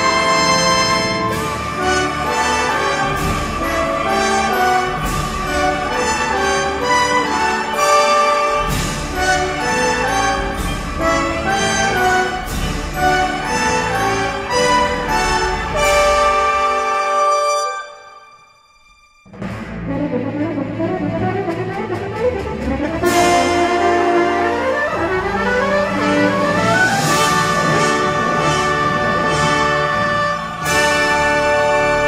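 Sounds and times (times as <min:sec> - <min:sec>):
french horns and trumpets playing chords: 0:00.0 - 0:18.2, 0:19.9 - 0:32.0.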